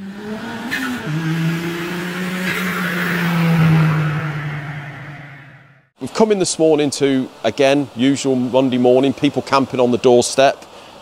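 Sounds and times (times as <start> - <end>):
car engine with rushing whoosh: 0.0 - 5.9.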